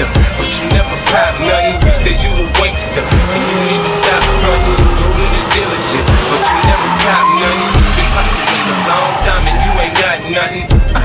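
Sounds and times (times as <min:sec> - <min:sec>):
hip-hop music with steady beat: 0:00.0 - 0:11.0
car tyres squealing: 0:00.3 - 0:10.9.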